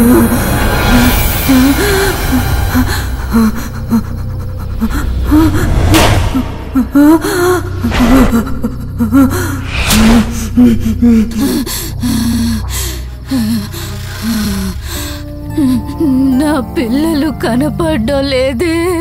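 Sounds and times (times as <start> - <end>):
low steady drone: 0.0 - 17.3.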